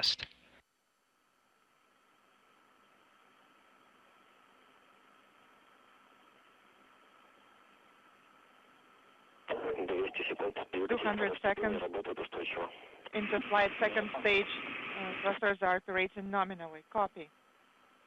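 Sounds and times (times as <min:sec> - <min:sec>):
man speaking over radio: 0:00.0 - 0:00.2, 0:09.5 - 0:14.4
radio channel hiss: 0:00.0 - 0:00.2, 0:09.5 - 0:15.8.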